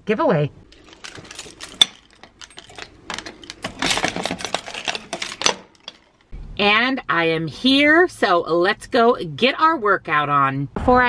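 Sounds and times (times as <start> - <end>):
keys jangling: 0.7 - 6.3
small metal door opening: 0.7 - 6.3.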